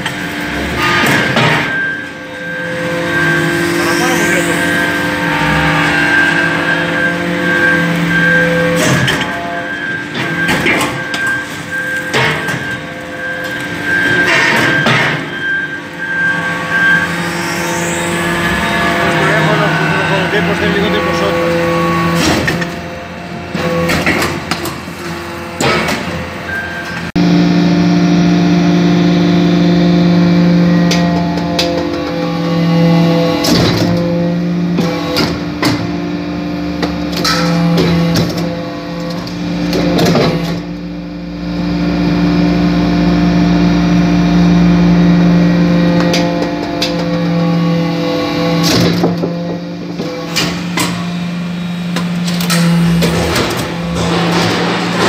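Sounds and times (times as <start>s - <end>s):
hydraulic press pump hum: 0.0s - 55.0s
machine knocks and clatter: 52.0s - 55.0s.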